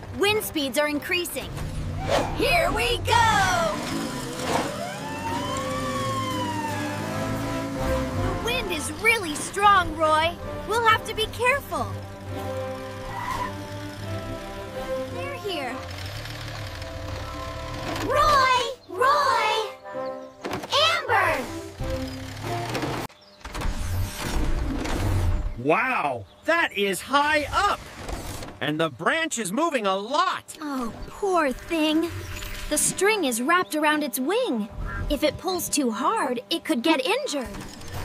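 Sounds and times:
low vehicle rumble: 0:01.4 - 0:18.8
siren wailing: 0:04.4 - 0:08.5.

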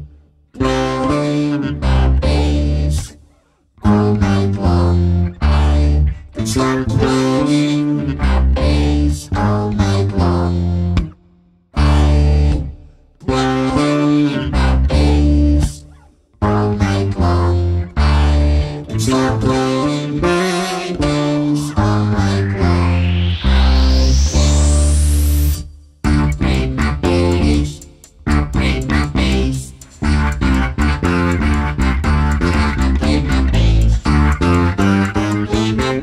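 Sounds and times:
vocoded voice: 0:00.0 - 0:11.2, 0:11.8 - 0:36.0
bass guitar with effects: 0:00.0 - 0:36.0.

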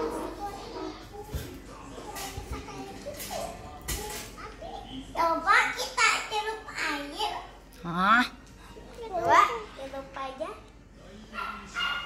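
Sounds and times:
young children talking and exclaiming: 0:00.0 - 0:07.7, 0:08.9 - 0:10.7.

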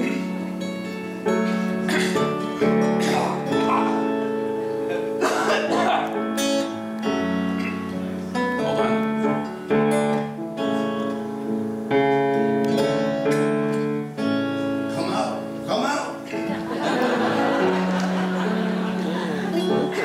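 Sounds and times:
acoustic guitars strumming chords: 0:00.0 - 0:20.0.

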